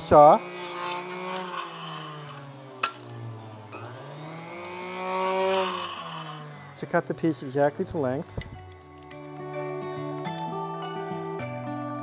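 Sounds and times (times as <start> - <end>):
electric saw cutting lead: 0.0 - 9.3.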